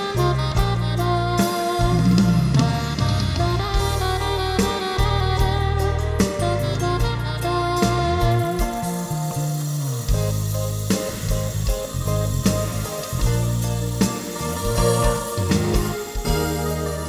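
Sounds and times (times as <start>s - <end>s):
bass line: 0.0s - 17.0s
drums: 0.0s - 17.0s
saxophone melody: 0.0s - 17.0s.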